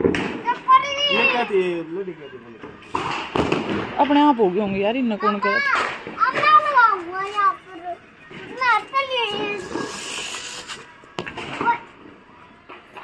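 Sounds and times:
short hiss: 0:09.6 - 0:11.0.

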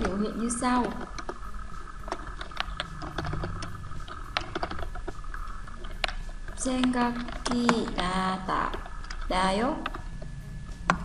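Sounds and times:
keyboard typing: 0:00.0 - 0:10.2.

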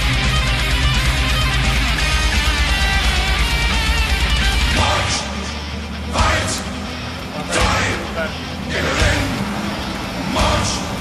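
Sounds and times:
tracked vehicle engine running: 0:00.0 - 0:11.0.

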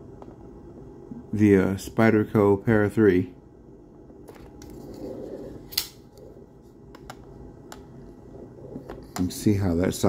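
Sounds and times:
low steady background rumble: 0:00.0 - 0:10.0.

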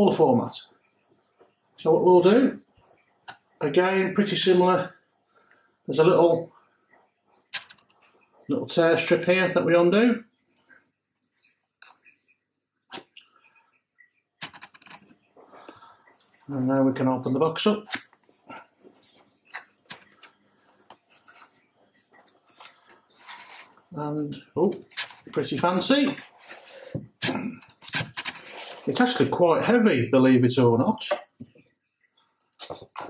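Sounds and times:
cardboard scraping and rubbing: 0:22.3 - 0:23.8.

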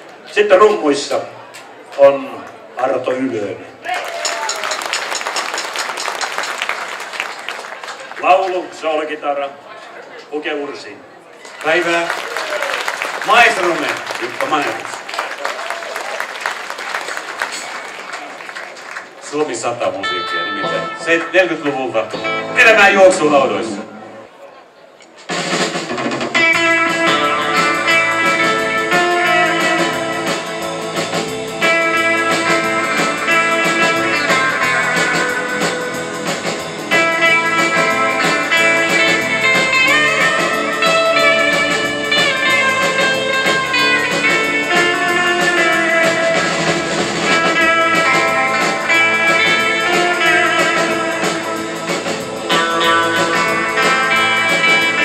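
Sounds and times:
rhythm guitar: 0:12.9 - 0:15.1, 0:20.0 - 0:23.2, 0:25.3 - 0:55.0
twangy electric lead guitar: 0:20.0 - 0:23.2, 0:25.3 - 0:55.0
drum kit: 0:25.2 - 0:55.0.

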